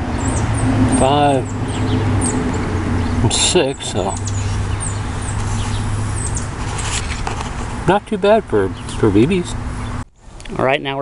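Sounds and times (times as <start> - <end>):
small birds chirping: 0.0 - 10.7.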